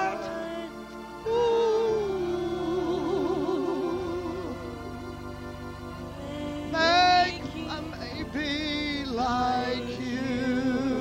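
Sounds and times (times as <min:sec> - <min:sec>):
congregation singing: 0:00.0 - 0:11.0
voice holding vibrato notes: 0:00.0 - 0:11.0.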